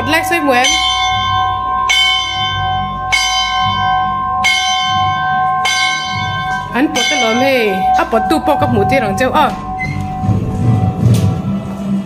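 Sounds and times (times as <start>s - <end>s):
church bell ringing: 0.0s - 11.8s.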